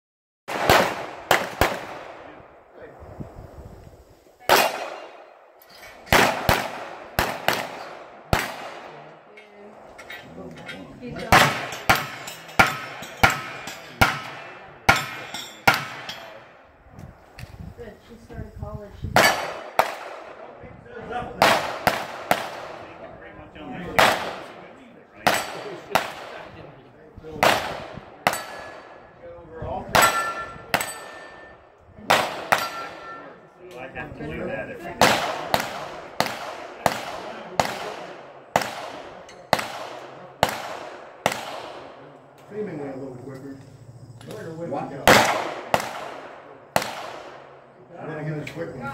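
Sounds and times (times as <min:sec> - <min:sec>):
gunshots: 0:00.5 - 0:02.5, 0:04.4 - 0:05.4, 0:06.1 - 0:09.1, 0:11.2 - 0:16.5, 0:19.2 - 0:20.6, 0:21.4 - 0:23.1, 0:23.8 - 0:26.6, 0:27.4 - 0:29.0, 0:29.9 - 0:33.2, 0:34.9 - 0:42.1, 0:45.0 - 0:47.6
ringing of steel targets: 0:09.4 - 0:16.6, 0:25.2 - 0:26.1, 0:28.2 - 0:29.2, 0:29.9 - 0:31.7, 0:32.3 - 0:33.5, 0:39.2 - 0:40.5.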